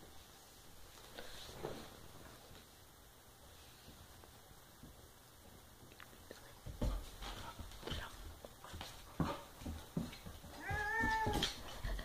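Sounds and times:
animals scuffling on tile floor: 6.5 - 12.0.

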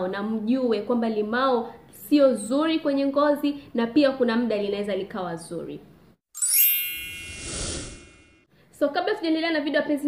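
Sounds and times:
bright shimmering chime: 6.4 - 8.5.

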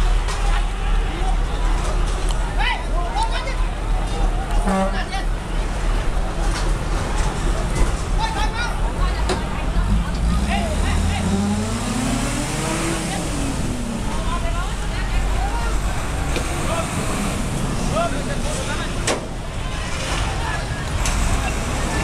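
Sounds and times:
crowd talking and calling out: 0.0 - 22.0
fire truck engine revving: 3.6 - 22.0.

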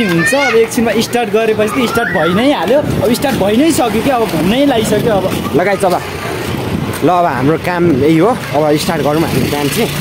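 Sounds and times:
man talking: 0.0 - 6.2, 7.0 - 10.0
street background noise: 0.0 - 10.0.

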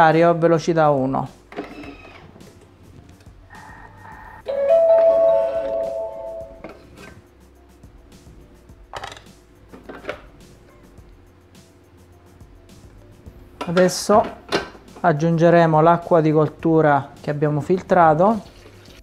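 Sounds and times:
kitchen machine electronic chime: 4.5 - 6.6
lid and bowl clicks and knocks: 8.9 - 10.3.

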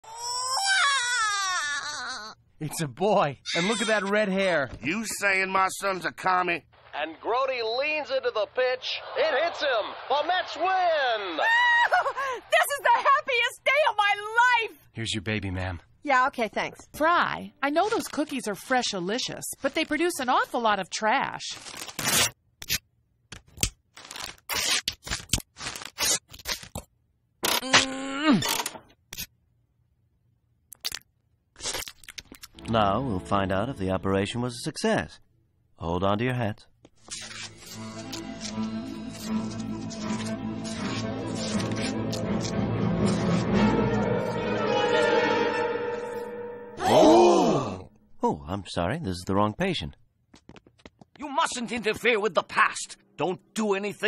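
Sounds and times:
cartoon baby crying: 0.0 - 2.4, 3.5 - 4.2
cartoon wrapper ripping: 21.5 - 22.8, 23.4 - 26.8, 30.7 - 32.6, 37.0 - 43.4.

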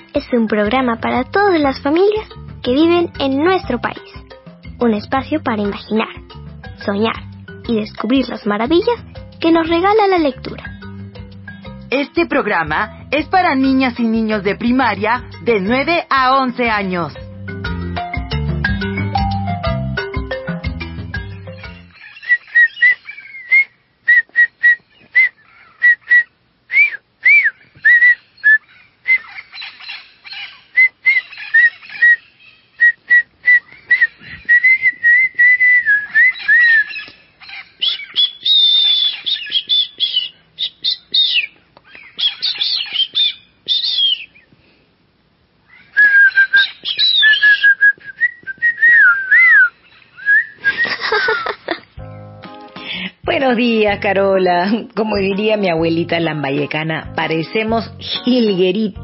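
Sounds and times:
person whistling birdlike chirps: 22.2 - 29.4, 30.8 - 32.2, 32.8 - 37.1, 43.0 - 44.3, 46.0 - 51.0.

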